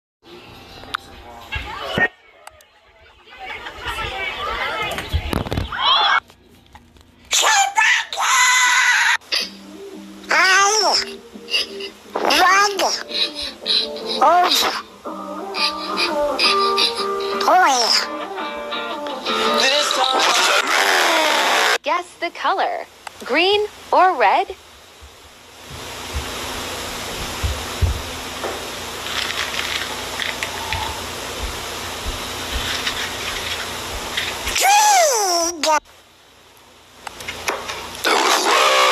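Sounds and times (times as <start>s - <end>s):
faint steady background tones: 0.3s - 20.0s
high-pitched cry: 7.3s - 9.6s, 10.3s - 14.9s, 15.5s - 18.2s, 34.6s - 35.8s
soft low thumps: 27.1s - 28.2s, 31.4s - 32.6s
crackles: 28.9s - 31.2s, 36.5s - 38.9s.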